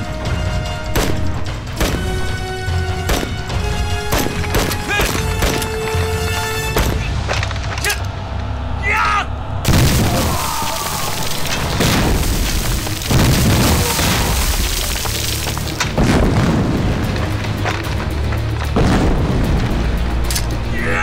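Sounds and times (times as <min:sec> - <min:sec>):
person shouting: 0:08.8 - 0:09.4, 0:10.0 - 0:11.2, 0:20.7 - 0:21.0
explosion booms: 0:09.6 - 0:15.0, 0:15.9 - 0:17.3, 0:18.8 - 0:19.8.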